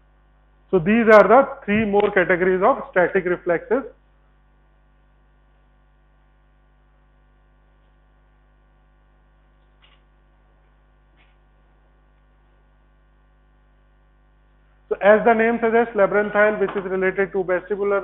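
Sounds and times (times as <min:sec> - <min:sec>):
faint electrical mains hum: 0:00.0 - 0:18.0.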